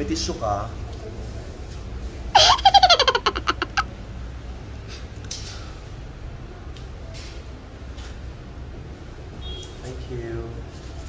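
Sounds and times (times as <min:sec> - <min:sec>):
high-pitched giggling laughter: 0:02.4 - 0:03.9.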